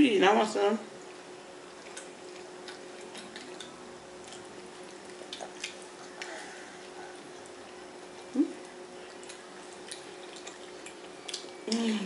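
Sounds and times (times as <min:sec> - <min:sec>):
faint hum: 0:00.0 - 0:12.0
mouths chewing: 0:01.0 - 0:12.0.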